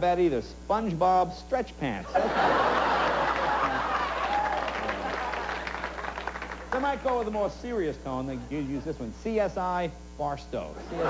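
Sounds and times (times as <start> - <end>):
studio audience applauding: 2.9 - 7.5.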